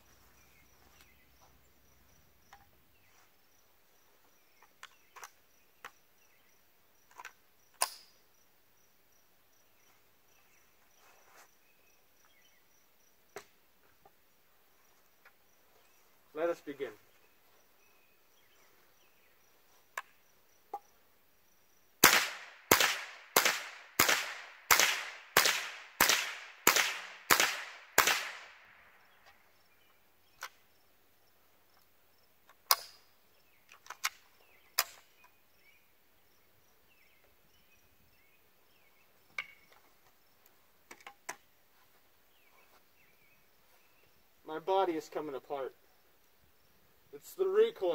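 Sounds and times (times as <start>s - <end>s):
rifle shots: 22.0s - 28.8s.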